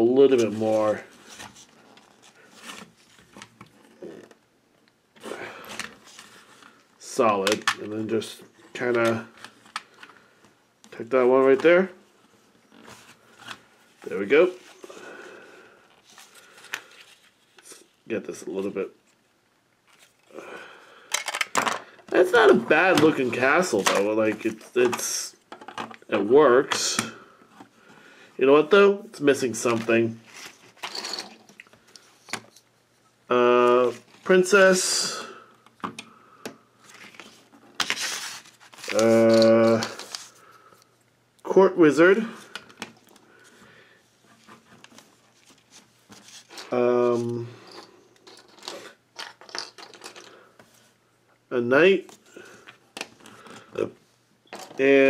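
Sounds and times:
plastic bricks clicking and rattling: 38.8 - 40.2, 48.2 - 50.3.

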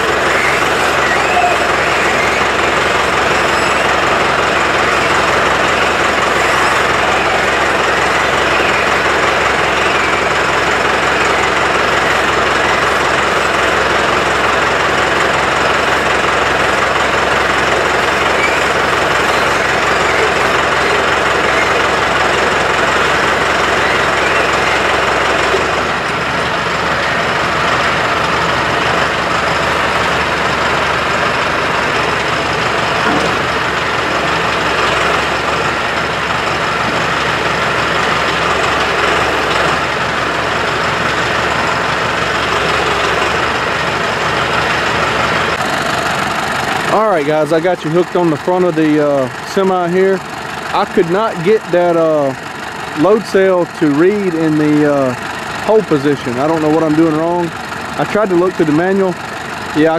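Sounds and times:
diesel tractor engine under load: 0.0 - 59.9
tires spinning on concrete: 0.0 - 59.9.

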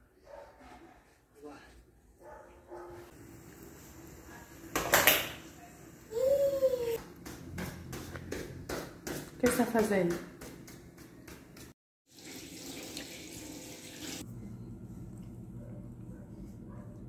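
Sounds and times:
toddler vocal sounds: 6.1 - 7.0.

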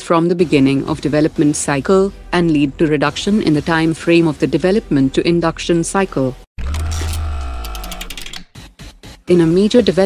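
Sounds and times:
fast run of ticks and clicks: 6.6 - 8.4.

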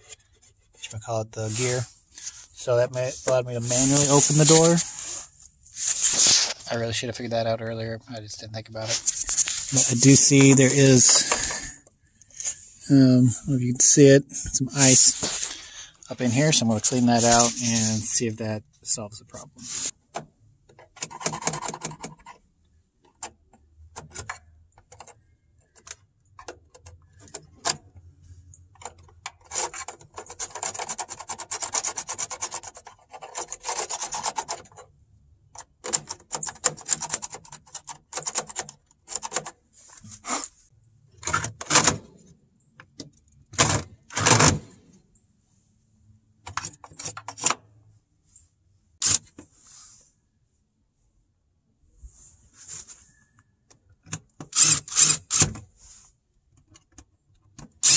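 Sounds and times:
ice being scraped: 3.6 - 6.7.

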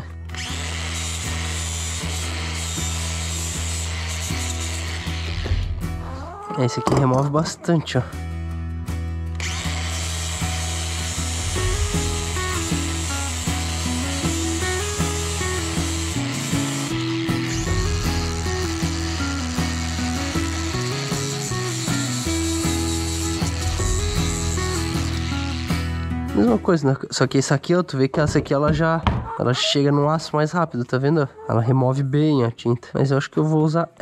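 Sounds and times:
angle grinder grinding metal: 0.0 - 7.4, 9.3 - 26.6.

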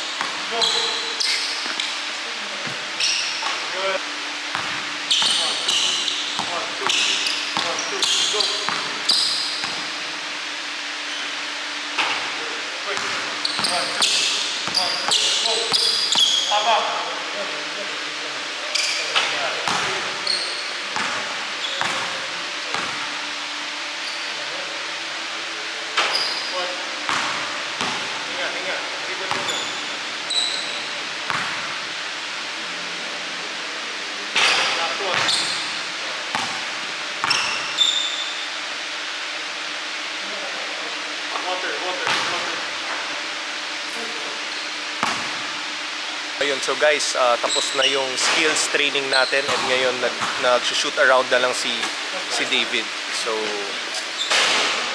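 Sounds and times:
steady hum: 0.0 - 54.9
short high squeaks: 0.5 - 1.9, 3.0 - 3.6, 5.0 - 9.7, 13.4 - 16.7, 18.7 - 19.2, 20.2 - 20.8, 26.0 - 26.7, 29.4 - 31.0, 34.4 - 35.8, 37.2 - 38.4, 47.4 - 48.3, 49.0 - 49.5.

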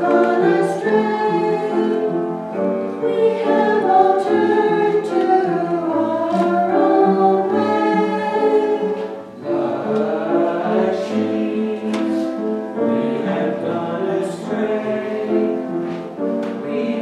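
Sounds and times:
mixed church choir singing: 0.0 - 17.0.

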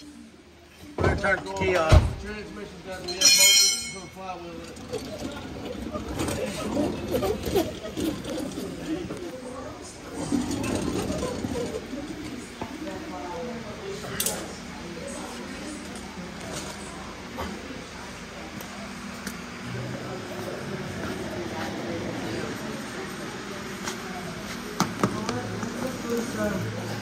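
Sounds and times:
indistinct talking: 0.0 - 27.0
sharp metallic clinks: 3.1 - 4.2.

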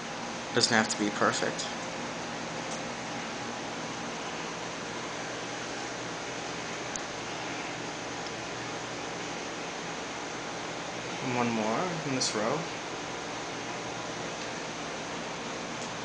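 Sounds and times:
room noise hiss: 0.0 - 16.0.

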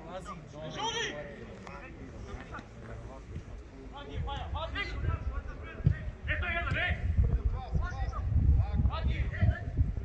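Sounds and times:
men shouting calls: 0.2 - 1.3.

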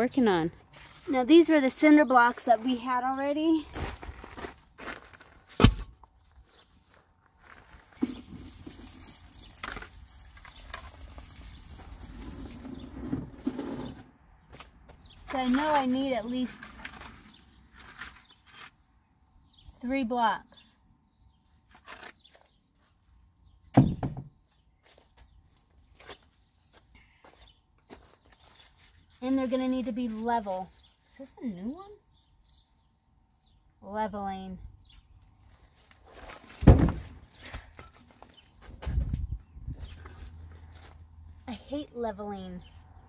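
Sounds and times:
footsteps on soil: 0.6 - 8.3, 24.5 - 31.2, 39.7 - 41.5.

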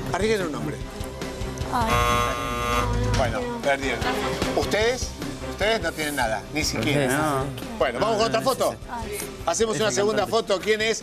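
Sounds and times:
background music: 0.0 - 11.0
game show buzzer: 1.8 - 3.0.

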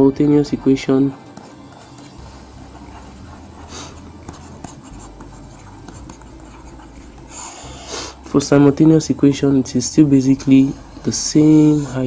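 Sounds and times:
stylus scratching on tablet: 0.0 - 12.0.

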